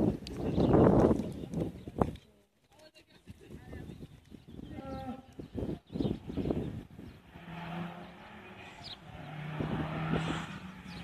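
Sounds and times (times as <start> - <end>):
distant rally car engine: 7.1 - 11.0.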